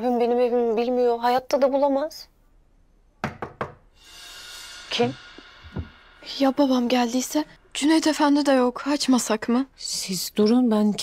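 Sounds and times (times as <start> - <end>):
knocking on a door: 3.2 - 3.9, 5.6 - 6.0.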